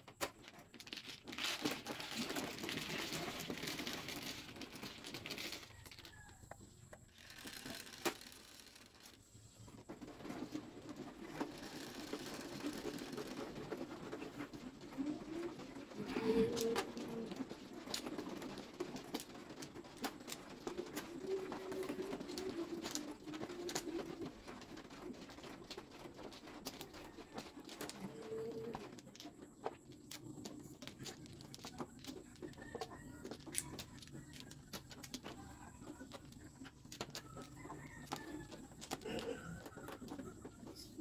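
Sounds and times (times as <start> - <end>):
table shuffling mechanism droning: 7.0 - 9.2.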